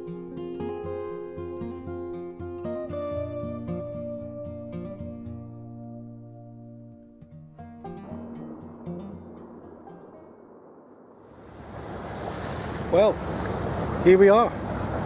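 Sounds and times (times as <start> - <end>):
acoustic guitar music: 0.0 - 11.1
wind and sea rushing: 8.0 - 15.0.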